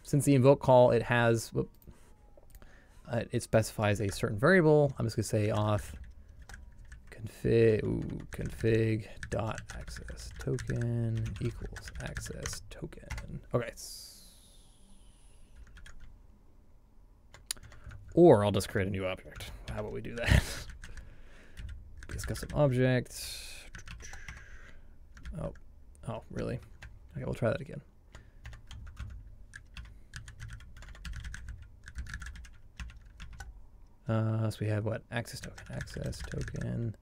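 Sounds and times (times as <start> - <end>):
computer keyboard typing: 3.8 - 13.4, 15.6 - 16.1, 17.3 - 18.2, 19.4 - 21.0, 21.6 - 22.7, 23.7 - 24.5, 25.1 - 25.6, 28.1 - 33.5, 35.3 - 36.8.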